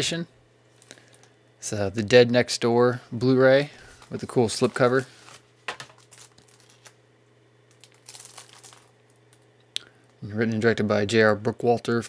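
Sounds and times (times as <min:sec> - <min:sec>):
plastic wrap and card rustling: 0:03.2 - 0:07.0, 0:07.7 - 0:10.2
plastic crinkling: 0:03.4 - 0:07.0, 0:07.7 - 0:10.2.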